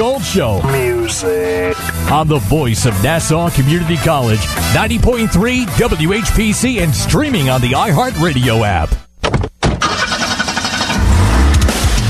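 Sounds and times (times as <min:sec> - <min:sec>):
heavy metal music: 0:00.0 - 0:09.0
car engine starting and running: 0:09.3 - 0:12.0.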